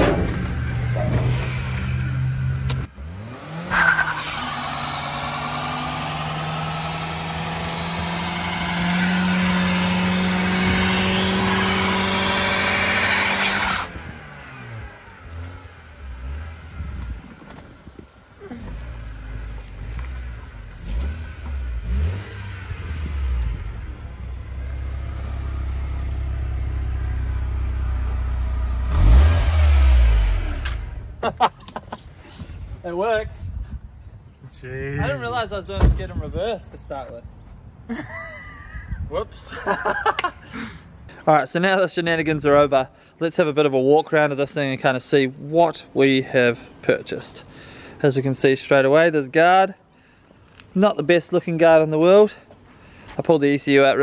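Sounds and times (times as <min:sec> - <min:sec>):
car engine revving: 0:00.1 - 0:17.4, 0:18.4 - 0:31.2
tyre squeal: 0:03.7 - 0:04.9.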